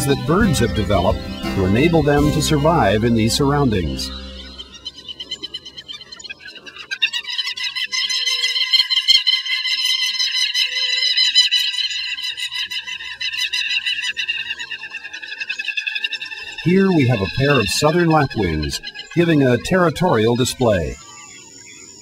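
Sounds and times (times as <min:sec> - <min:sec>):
lapwings calling: 0:00.0 - 0:22.0.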